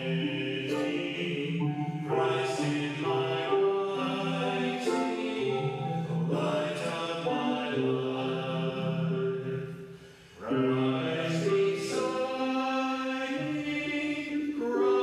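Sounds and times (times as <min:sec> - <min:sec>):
slow hymn singing: 0:00.0 - 0:15.0.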